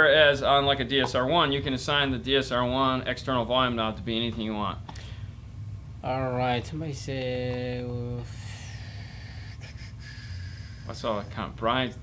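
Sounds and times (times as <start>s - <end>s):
low room hum: 0.0s - 12.0s
breath: 4.9s - 5.4s, 8.2s - 11.3s.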